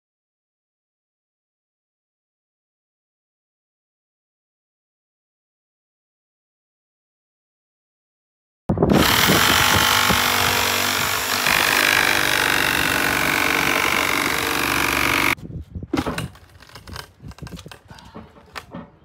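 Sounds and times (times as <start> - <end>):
cordless drill driving screw: 8.9 - 15.4
knocks and rustles: 9.0 - 19.0.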